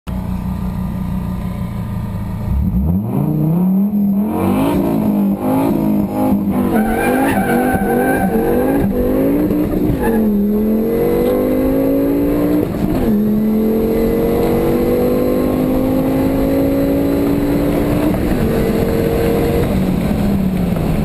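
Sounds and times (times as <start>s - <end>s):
car engine revving: 0.8s - 21.0s.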